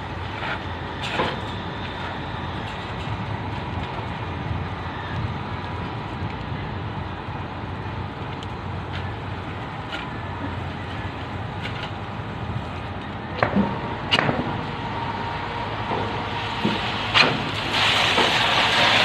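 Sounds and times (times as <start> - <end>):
diesel engine running: 0.0 - 19.0.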